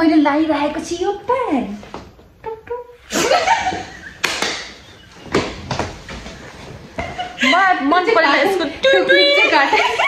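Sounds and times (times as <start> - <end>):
women laughing: 3.1 - 5.6, 6.8 - 10.0.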